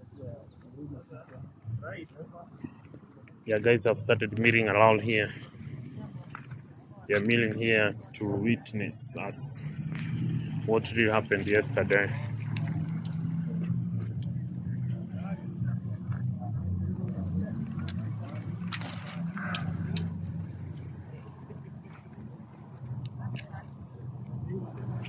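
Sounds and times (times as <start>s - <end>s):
crowd talking: 0.0s - 25.0s
vehicle engine hum: 0.0s - 25.0s.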